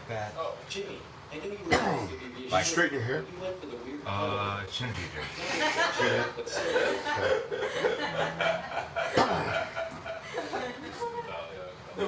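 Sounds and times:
people laughing: 0:05.3 - 0:11.2.

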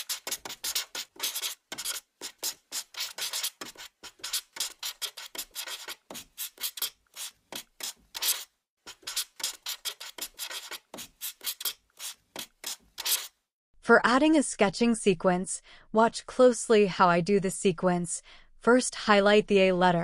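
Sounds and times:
pen scratching on paper: 0:00.0 - 0:13.3.

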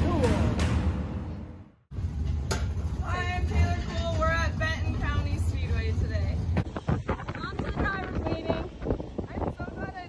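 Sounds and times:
young woman talking: 0:07.3 - 0:08.7.

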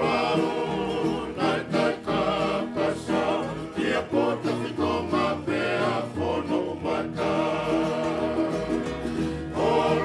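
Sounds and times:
group singing in harmony: 0:00.0 - 0:10.0.

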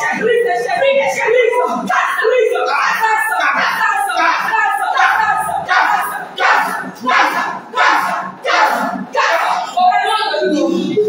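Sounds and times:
voices shouting prayer: 0:00.0 - 0:11.0.

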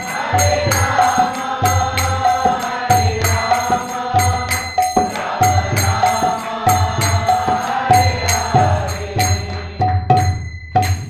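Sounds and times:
group chanting: 0:00.0 - 0:10.2
hand cymbals ringing: 0:00.0 - 0:11.0.

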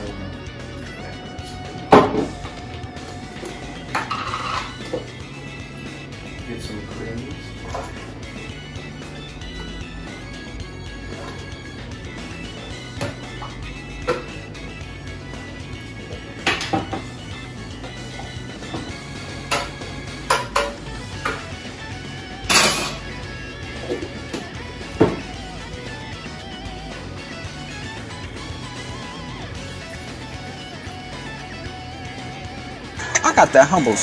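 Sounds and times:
background music: 0:00.0 - 0:34.0
kitchen containers knocking and clinking: 0:01.8 - 0:02.6, 0:03.4 - 0:05.2, 0:07.5 - 0:08.2, 0:13.0 - 0:14.4, 0:16.3 - 0:17.1, 0:18.6 - 0:21.5, 0:22.4 - 0:23.1, 0:23.8 - 0:25.4.

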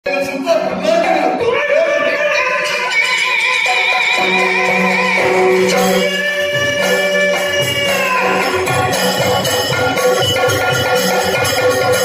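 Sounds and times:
high sung voice: 0:00.1 - 0:11.8.

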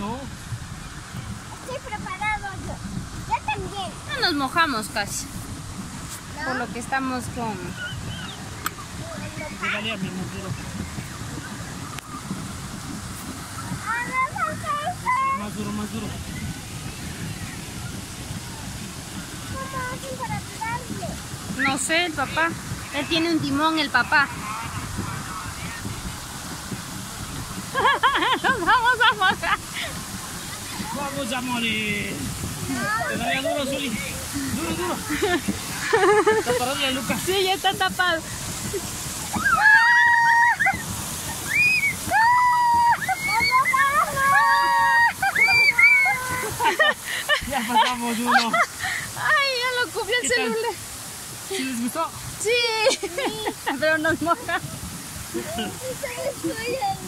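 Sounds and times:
churning water rush: 0:00.0 - 0:57.0
fountain spray splashing: 0:00.0 - 0:57.0
children shrieking: 0:39.2 - 0:46.9.

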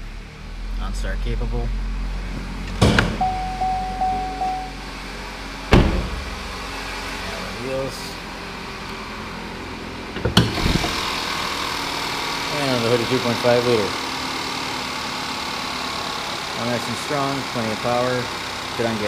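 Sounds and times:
car engine running: 0:00.0 - 0:19.0
car door slamming: 0:02.8 - 0:04.6, 0:05.7 - 0:06.5
warning chime: 0:03.2 - 0:04.9
car hood clunk: 0:05.7 - 0:06.5.

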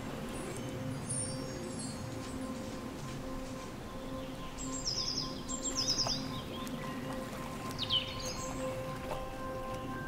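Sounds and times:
soft background music: 0:00.0 - 0:10.0
bird chirping: 0:00.2 - 0:02.7, 0:03.4 - 0:10.0.

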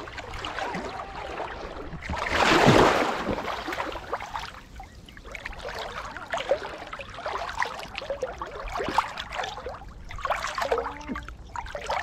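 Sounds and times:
water lapping and trickling: 0:00.0 - 0:12.0.

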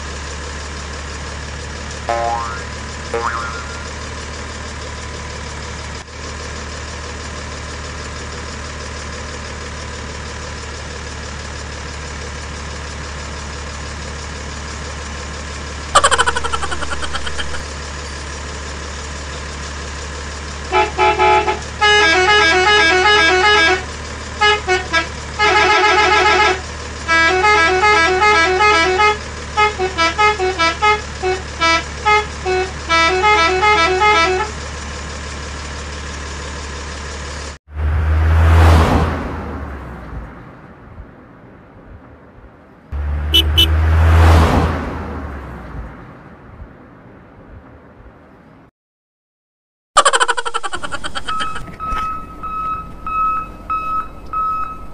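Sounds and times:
toy truck beeping tune: 0:50.8 - 0:54.9.

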